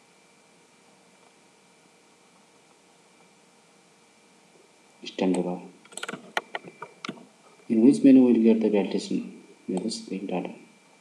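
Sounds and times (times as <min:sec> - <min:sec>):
person speaking: 0:05.0 - 0:05.8, 0:07.7 - 0:10.7
keyboard and mouse clicks: 0:05.3 - 0:07.2.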